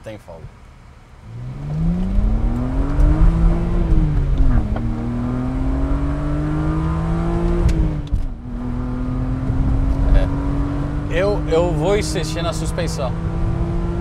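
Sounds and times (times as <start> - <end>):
car engine accelerating through gears: 1.2 - 14.0.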